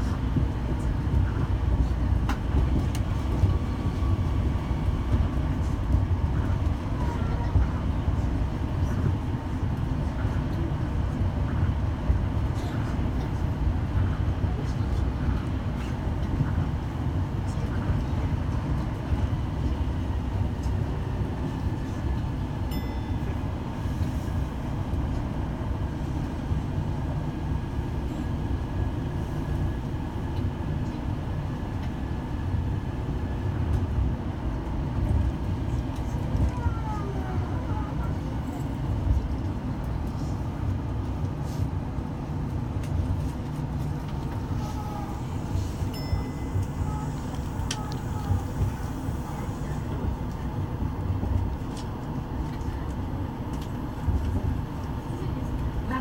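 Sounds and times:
train running gear rumble: 0.0 - 56.0.

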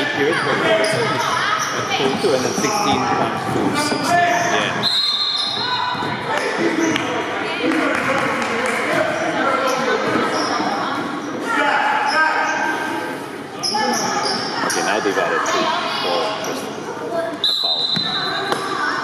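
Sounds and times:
voices echoing in hall: 0.0 - 19.0
referee's whistle: 4.8 - 5.8, 17.4 - 18.6.

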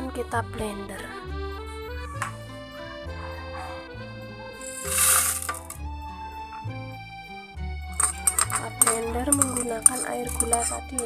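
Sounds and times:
background music with bass line: 0.0 - 11.0
rice tipped into glass jar: 4.6 - 5.8, 8.0 - 11.0.

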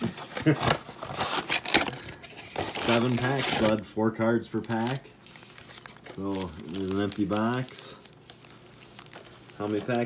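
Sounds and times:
card and foil rustling: 0.3 - 10.0.

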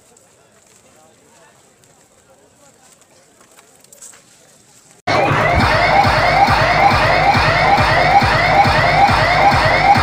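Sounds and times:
fast low beat: 5.1 - 10.0.

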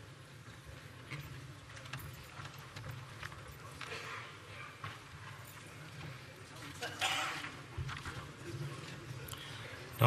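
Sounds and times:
murmur of voices: 0.5 - 10.0.

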